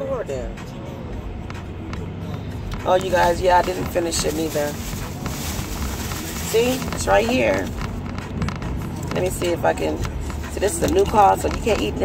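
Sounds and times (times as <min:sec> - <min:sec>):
car cabin rumble: 0:01.4 - 0:12.0
woman speaking: 0:02.8 - 0:04.8, 0:06.5 - 0:07.7, 0:09.2 - 0:10.0, 0:10.6 - 0:12.0.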